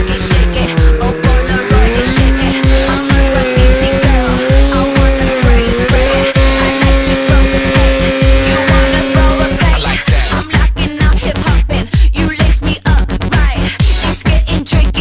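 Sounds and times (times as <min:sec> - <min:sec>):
snowmobile engine drone: 0:00.0 - 0:10.5
electronic dance music kick drum: 0:00.0 - 0:15.0.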